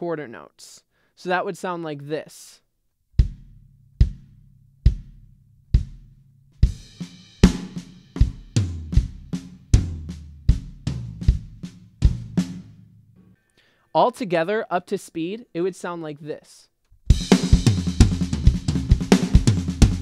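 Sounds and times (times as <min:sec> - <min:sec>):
bass drum beats: 0:03.2 - 0:12.8, 0:17.1 - 0:20.0.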